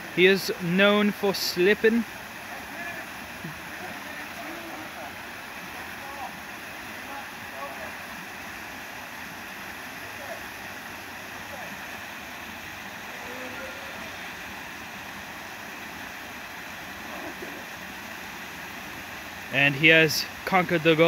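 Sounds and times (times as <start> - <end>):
waterfall rushing into pool: 0.0 - 21.0.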